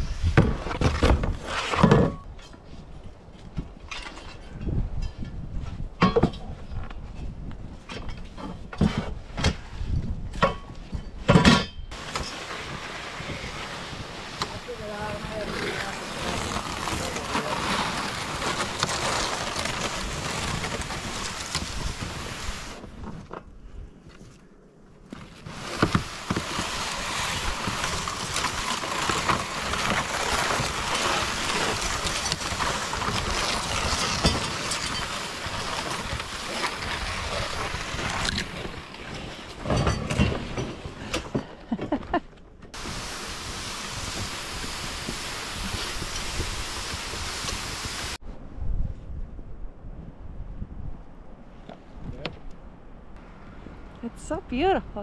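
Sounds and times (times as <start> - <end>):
plastic sled scraping through snow: 0.0 - 2.9, 8.4 - 10.2, 11.9 - 23.4, 25.0 - 48.3
footsteps crunching in snow: 11.9 - 22.8, 25.2 - 39.6.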